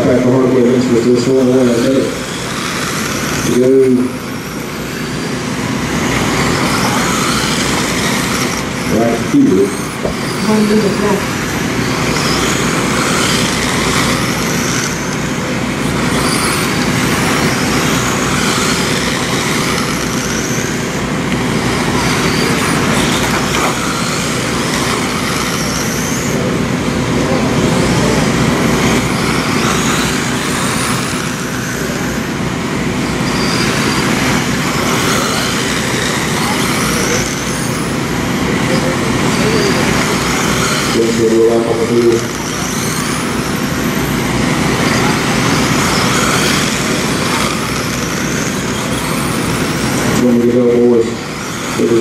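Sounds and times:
rc car motors whining: 0:00.0 - 0:52.0.

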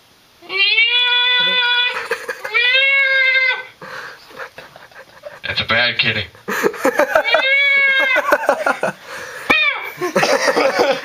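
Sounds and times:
man singing falsetto wail: 0:01.4 - 0:02.0.

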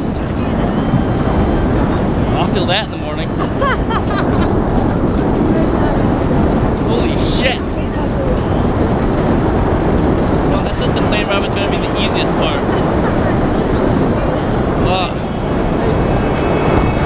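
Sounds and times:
freefall wind buffeting microphone: 0:00.0 - 0:17.0.

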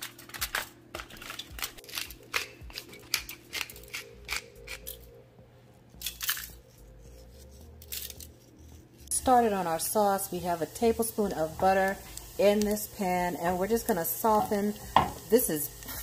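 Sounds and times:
aluminium foil crinkling: 0:00.0 - 0:05.0, 0:05.9 - 0:16.0.

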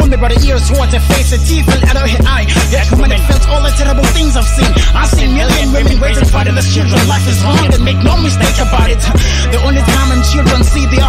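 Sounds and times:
held bass notes: 0:00.0 - 0:11.0
hip hop track: 0:00.0 - 0:11.0
person rapping: 0:00.0 - 0:11.0.

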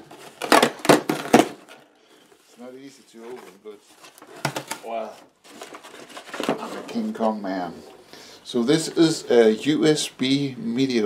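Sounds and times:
cardboard ripping: 0:00.0 - 0:01.6.

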